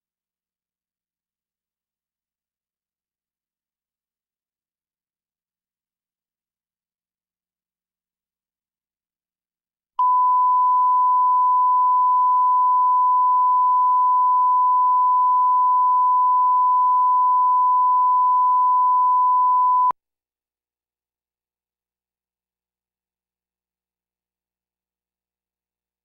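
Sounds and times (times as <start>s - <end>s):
steady test tone beep: 10.0s - 20.0s.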